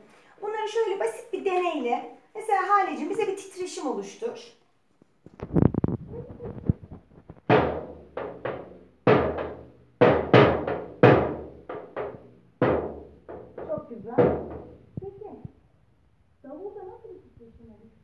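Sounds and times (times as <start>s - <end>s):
toy drum strikes: 7.5s - 14.8s.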